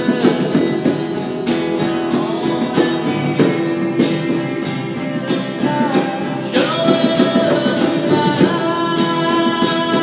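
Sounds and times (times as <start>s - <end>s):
acoustic guitar strumming: 0.0s - 10.0s
man singing: 0.0s - 10.0s.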